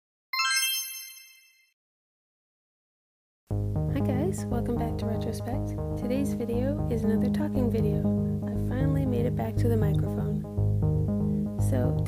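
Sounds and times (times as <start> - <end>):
bright bell-like logo chime: 0.4 - 1.7.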